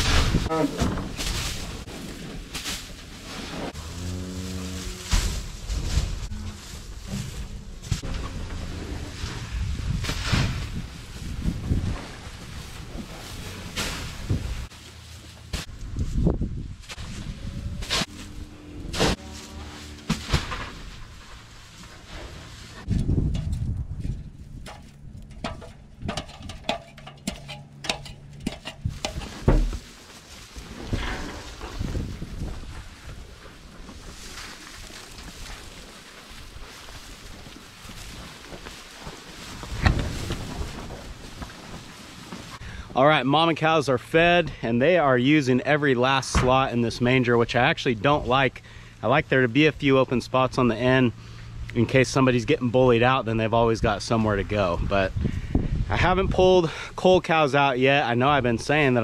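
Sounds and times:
hay rustling: 0.0s - 7.6s, 8.6s - 22.9s, 29.3s - 42.6s
hay bales thudding: 0.0s - 23.0s, 28.9s - 42.6s
cows mooing: 3.8s - 5.1s, 17.3s - 20.4s.

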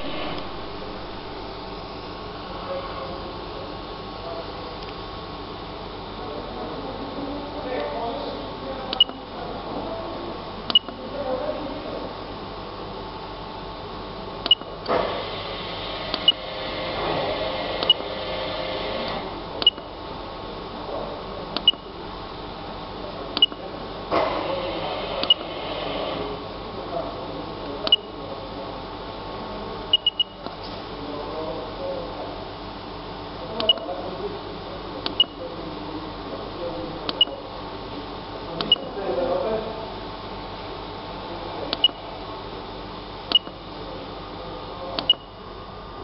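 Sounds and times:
steady background noise: 0.0s - 46.0s
keypad beeping: 9.0s - 9.2s, 10.7s - 11.0s, 14.5s - 14.7s, 19.6s - 19.9s, 21.6s - 21.8s, 23.4s - 23.6s, 29.9s - 30.4s, 33.6s - 33.9s
button click: 10.7s - 11.0s.

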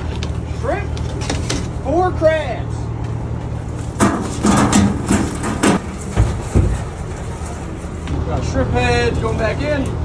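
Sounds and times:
boat engine humming: 0.0s - 10.0s
heavy thumps: 4.0s - 7.0s.

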